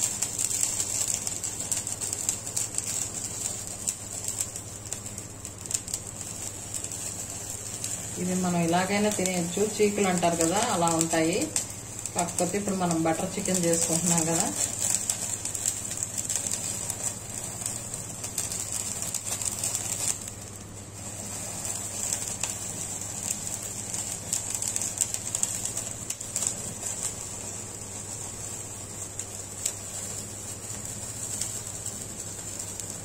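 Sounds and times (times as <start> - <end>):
faint crackling of charring meat: 0.0 - 33.0
gas burner flame: 0.0 - 33.0.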